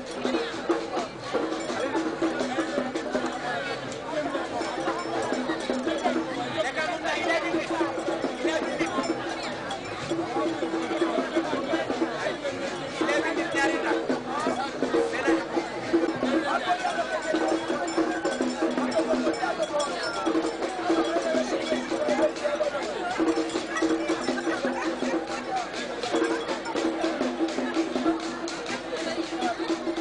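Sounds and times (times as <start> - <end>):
crowd chatter: 0.0 - 30.0
metal bell clanking: 0.1 - 11.5, 15.9 - 22.5.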